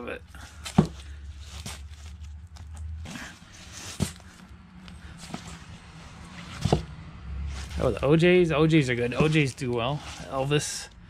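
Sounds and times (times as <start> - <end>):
record sleeves rustling: 0.3 - 6.9, 7.5 - 10.9.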